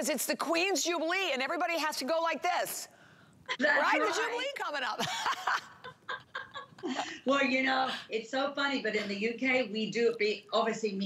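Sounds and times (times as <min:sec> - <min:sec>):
women laughing: 0:03.5 - 0:07.3.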